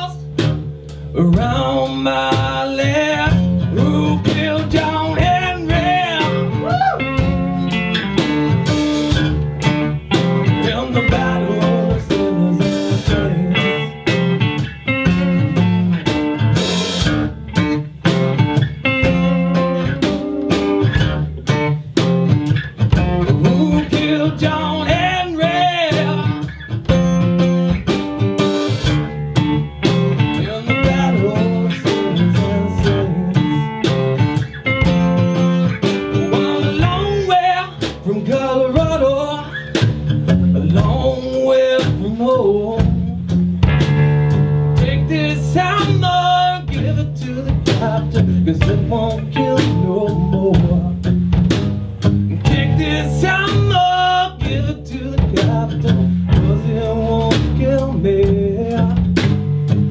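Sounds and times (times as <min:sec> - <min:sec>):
bending lead guitar line: 0:00.0 - 0:59.9
blues-rock band playing: 0:00.0 - 0:59.9.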